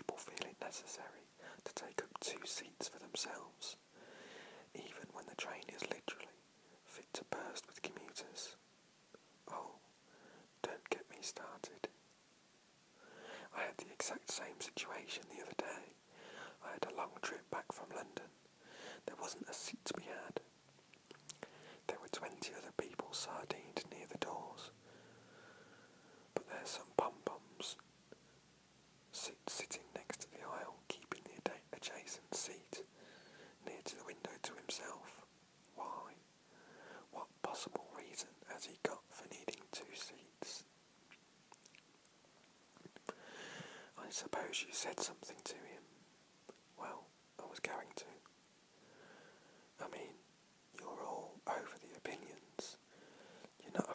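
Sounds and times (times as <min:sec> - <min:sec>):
man whispering: 0:00.0 - 0:03.9, 0:04.7 - 0:08.6, 0:09.4 - 0:09.9, 0:10.6 - 0:11.9, 0:13.2 - 0:20.5, 0:21.3 - 0:24.8, 0:26.3 - 0:27.8, 0:29.1 - 0:32.9, 0:33.6 - 0:36.2, 0:36.9 - 0:40.7, 0:43.0 - 0:45.9, 0:46.8 - 0:48.3, 0:49.8 - 0:53.9.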